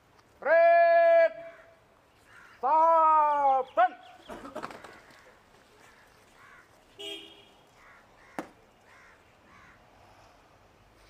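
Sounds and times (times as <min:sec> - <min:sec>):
man shouting command: 0:00.4 - 0:01.5, 0:02.6 - 0:04.0.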